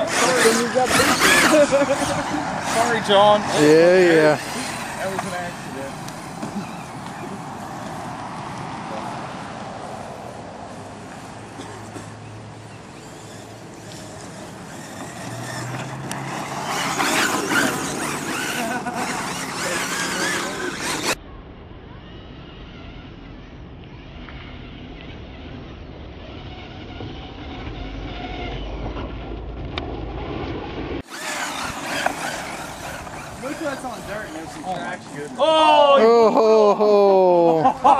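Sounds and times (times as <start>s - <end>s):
electric motor whining: 0.0s - 8.0s, 12.8s - 21.2s, 31.0s - 35.3s.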